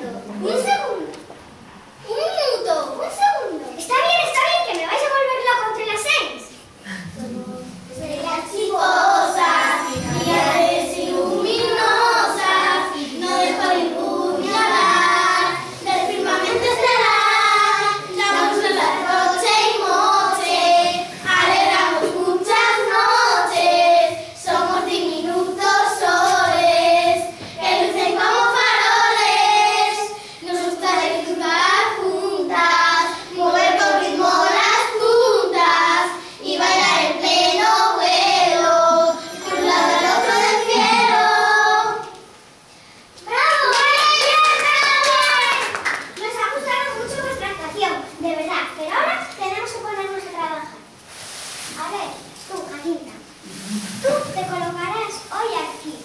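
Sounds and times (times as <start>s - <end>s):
children singing in unison: 8.6s - 42.1s.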